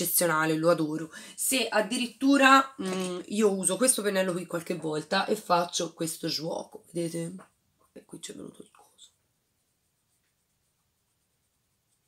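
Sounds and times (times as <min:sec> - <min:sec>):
makeup brush on skin: 0:07.9 - 0:12.0.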